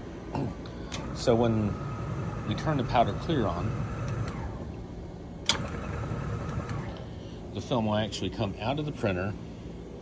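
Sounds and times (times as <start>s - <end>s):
powder shaker machine humming: 0.0s - 5.1s.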